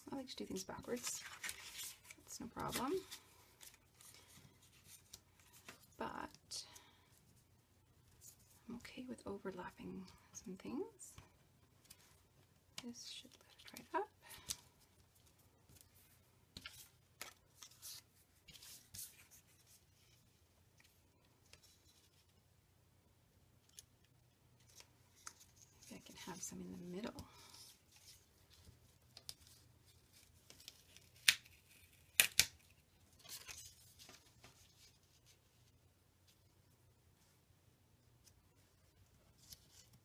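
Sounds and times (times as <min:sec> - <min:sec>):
paper rustle: 0:00.6 - 0:06.0, 0:27.1 - 0:36.4, 0:38.6 - 0:40.0.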